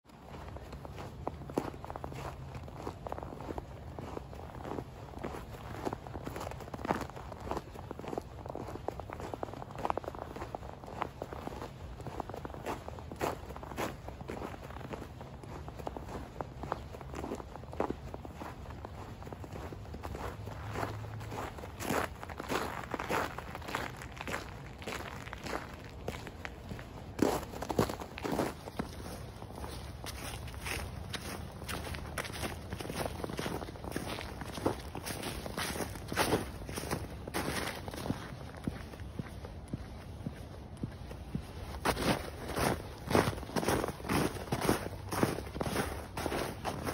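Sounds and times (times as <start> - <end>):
footsteps crunching through snow: 0.1 - 46.9.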